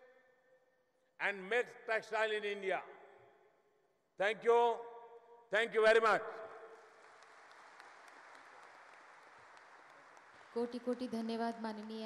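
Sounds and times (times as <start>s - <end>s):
audience clapping: 6.4s - 12.0s.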